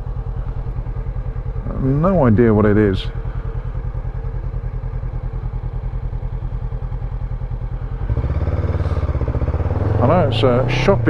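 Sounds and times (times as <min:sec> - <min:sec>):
motorcycle engine idling and pulling away: 0:00.0 - 0:11.0.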